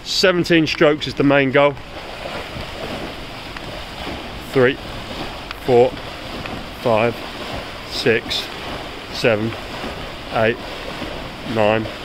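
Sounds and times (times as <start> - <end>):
water washing in pool: 0.0 - 12.0.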